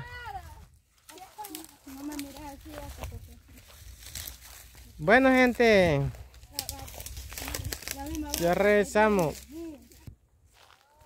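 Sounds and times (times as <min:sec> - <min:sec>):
light clicks and crackles: 0:01.0 - 0:03.3, 0:06.3 - 0:08.7.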